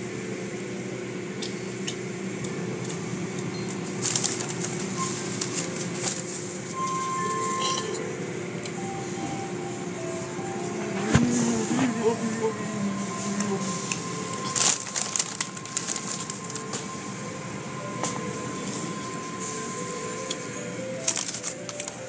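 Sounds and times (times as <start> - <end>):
high machine tone: 4.8 - 22.0.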